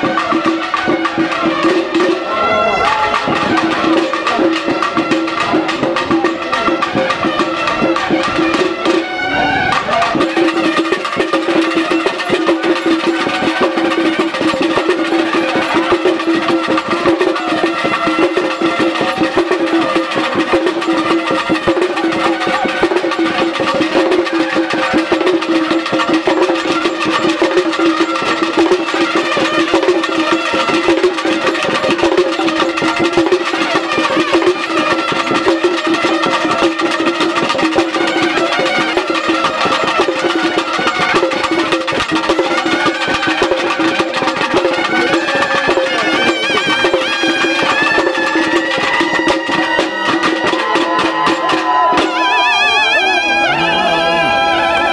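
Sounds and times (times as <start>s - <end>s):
fast continuous drumming: 0.0s - 54.9s
wind instruments playing melody: 0.0s - 54.9s.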